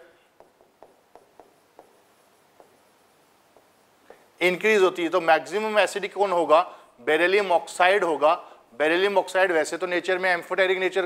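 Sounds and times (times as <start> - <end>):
pen writing on a board: 0.4 - 2.8.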